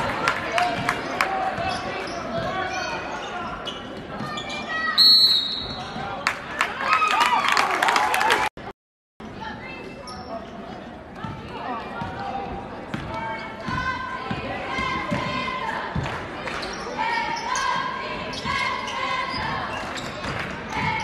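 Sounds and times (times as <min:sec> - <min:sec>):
people shouting and chattering: 0:00.0 - 0:08.5, 0:09.2 - 0:21.0.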